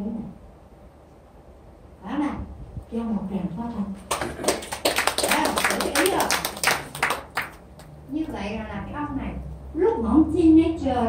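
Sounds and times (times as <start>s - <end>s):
audience applauding: 4.1s - 7.9s.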